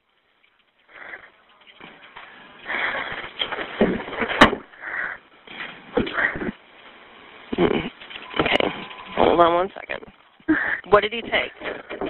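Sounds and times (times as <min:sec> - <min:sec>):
muffled rustling on telephone line: 0:00.0 - 0:12.0.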